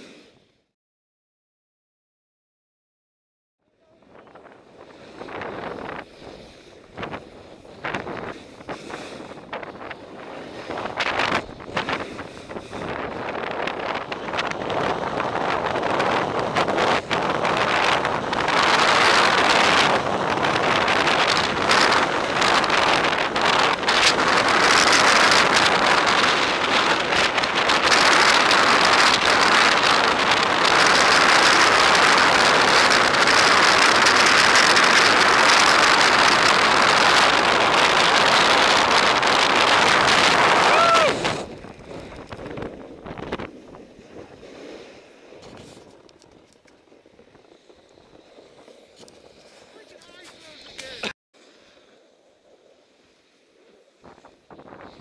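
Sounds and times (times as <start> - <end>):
snowboard scraping over snow: 4.0 - 55.0
wind rushing: 4.1 - 45.2.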